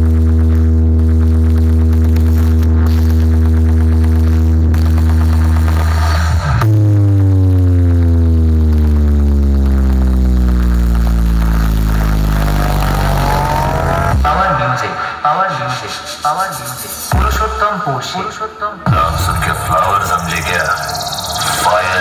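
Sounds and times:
loud electronic bass drone: 0:00.0 - 0:14.7.

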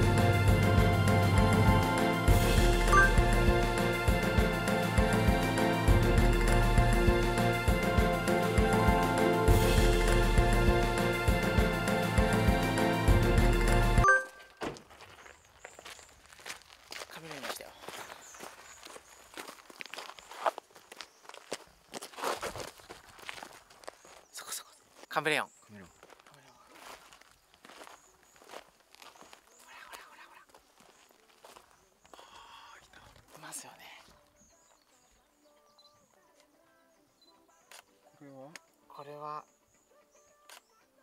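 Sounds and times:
outdoor ambience: 0:00.0 - 0:41.0
footsteps on gravel: 0:14.3 - 0:25.2, 0:25.8 - 0:32.5.

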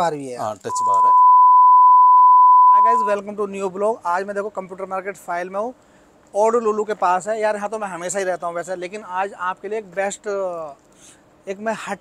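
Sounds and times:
man speaking: 0:00.0 - 0:01.2, 0:02.8 - 0:05.7
censor bleep: 0:00.7 - 0:03.2.

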